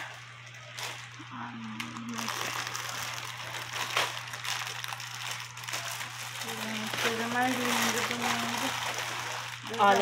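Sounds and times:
low hum of a voice: 0.0 - 4.3, 5.5 - 10.0
plastic bags crinkling: 0.0 - 10.0.

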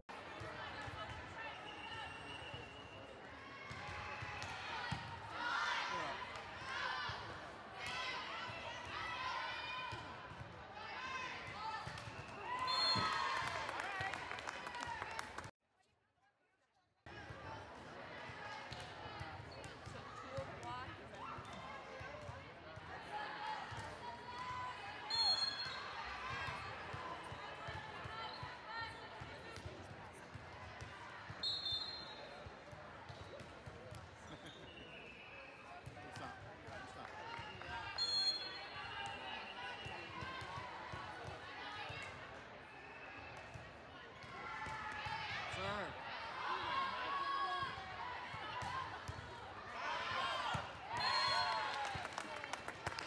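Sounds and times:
referee whistle blasts: 12.1 - 13.2, 25.1 - 25.8, 31.4 - 32.3, 38.0 - 38.7, 50.9 - 51.7.

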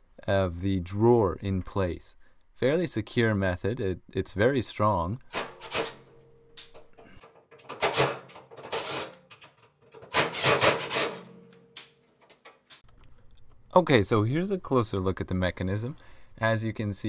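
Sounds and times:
screwdriver rasping on metal: 5.3 - 6.1, 7.6 - 11.3
metal bracket scraping housing: 7.6 - 11.6.

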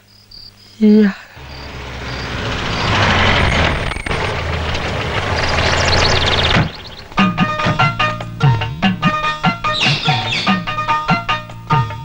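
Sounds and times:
car engine running: 1.4 - 9.4.

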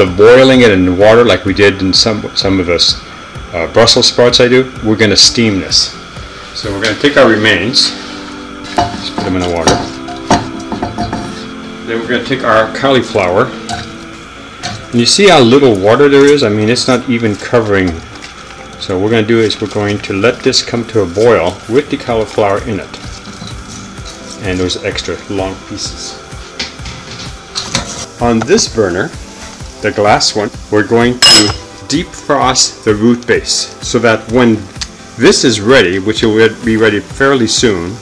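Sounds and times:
cutting board knocking on saucepan: 8.8 - 11.4.

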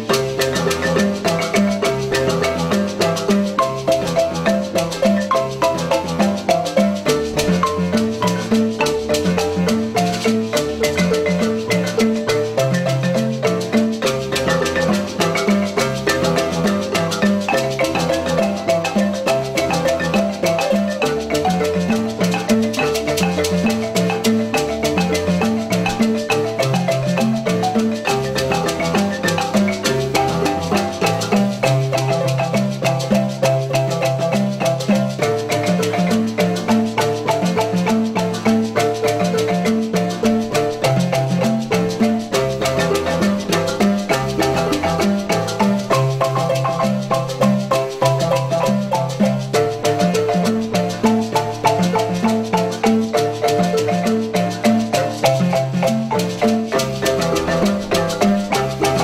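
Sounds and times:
low bass marimba line: 0.0 - 59.0
marimba ensemble playing: 0.0 - 59.0.

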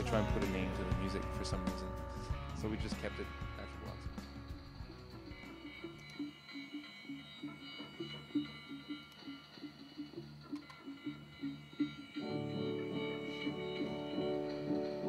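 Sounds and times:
faint held high tones: 3.5 - 15.0.

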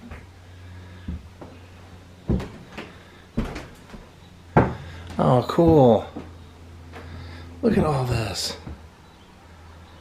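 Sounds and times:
low steady hum: 0.0 - 10.0
footsteps on wooden floor: 2.2 - 7.2.

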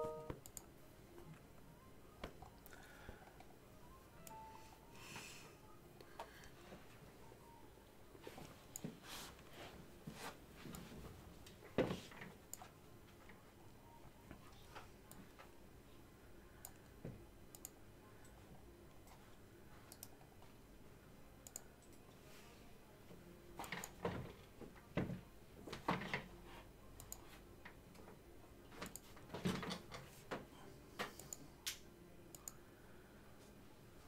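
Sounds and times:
computer mouse clicks: 0.4 - 0.7, 16.6 - 16.9, 17.5 - 18.4, 19.9 - 20.3, 21.4 - 22.0, 27.0 - 27.3, 28.8 - 29.2, 31.0 - 32.6.

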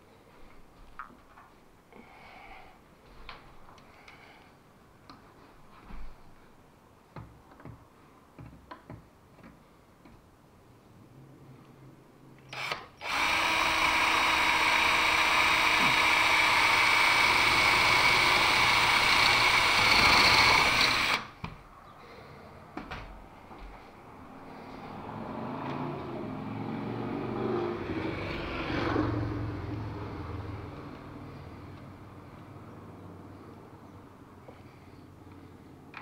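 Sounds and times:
quiet handling sounds: 2.9 - 4.2, 5.0 - 10.3
power drill drilling into wood: 12.5 - 21.4.

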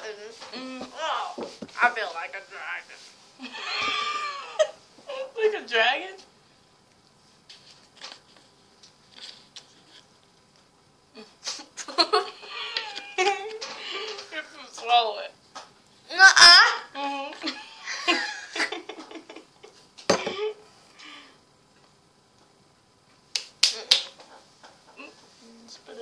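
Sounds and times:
girl giggling: 3.4 - 5.4, 11.2 - 14.1, 16.2 - 20.6
girl squealing: 16.1 - 17.2
finger snaps: 23.3 - 24.2.

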